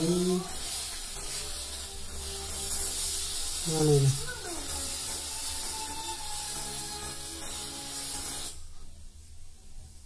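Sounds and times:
tv static hiss: 0.0 - 10.0.

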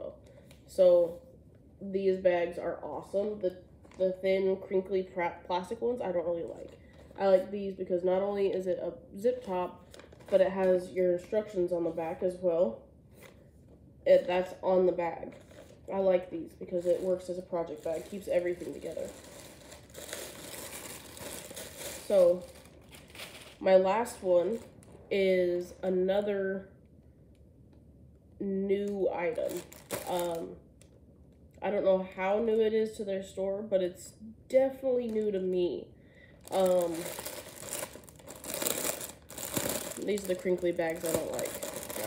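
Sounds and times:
plastic bag crinkling: 9.3 - 11.3, 15.2 - 25.1, 29.4 - 30.4, 35.1 - 35.5, 36.4 - 42.0.

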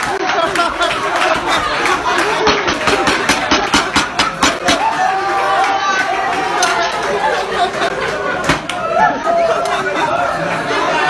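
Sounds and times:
crowd chatter: 0.0 - 11.0
people clapping: 0.0 - 11.0.

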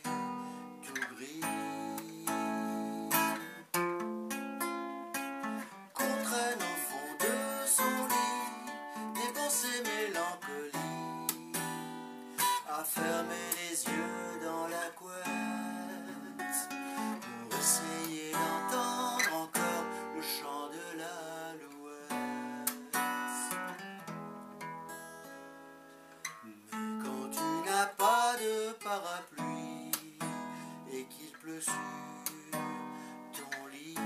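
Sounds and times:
man singing: 0.0 - 3.6, 5.9 - 23.8, 26.4 - 34.0
acoustic guitar strumming: 0.0 - 34.0.

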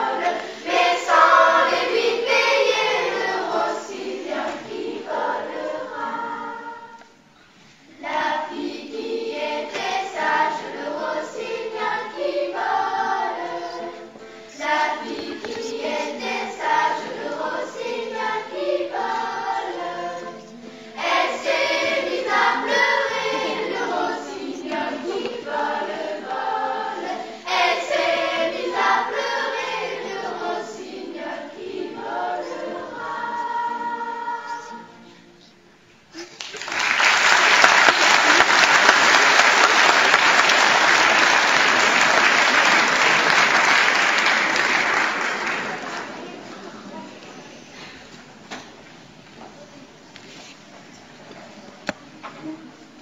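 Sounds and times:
children's choir singing: 0.0 - 35.6, 36.9 - 48.8.

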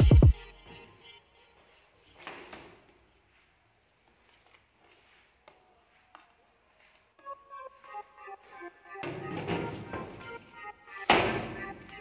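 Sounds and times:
background music: 0.0 - 2.7, 5.6 - 12.0.

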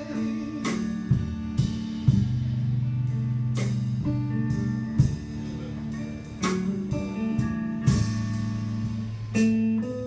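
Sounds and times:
blues band playing: 0.0 - 10.0.

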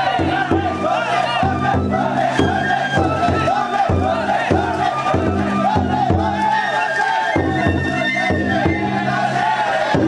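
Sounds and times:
large drum beating: 0.0 - 6.7, 7.4 - 10.0
crowd shouting a chant: 0.0 - 10.0.

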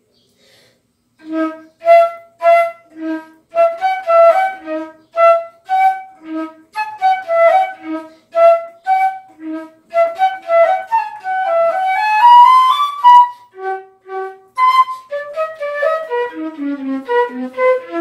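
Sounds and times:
flute melody: 1.2 - 18.0.

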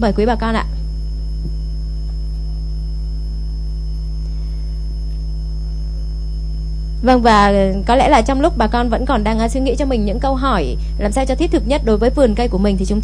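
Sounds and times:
low electrical mains hum: 0.0 - 13.0.

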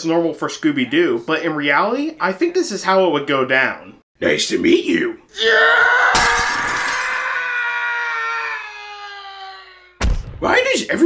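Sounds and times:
person screaming: 5.3 - 10.0.

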